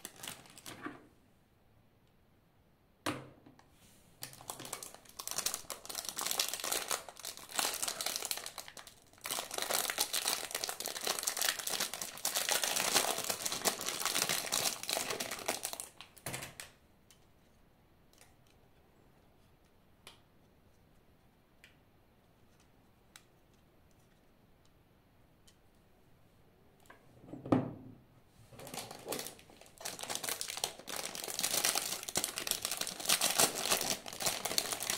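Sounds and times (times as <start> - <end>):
plastic bag crinkling: 0.0 - 0.8, 4.2 - 16.2, 28.6 - 34.9.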